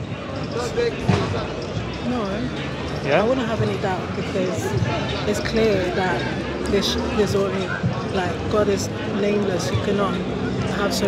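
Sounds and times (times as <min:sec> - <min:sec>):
busy pedestrian square chatter: 0:00.0 - 0:11.0.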